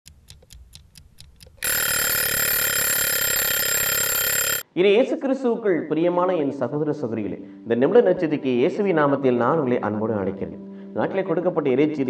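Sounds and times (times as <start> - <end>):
clock ticking quickly: 0.1 - 4.6
alarm clock ringing: 1.6 - 4.6.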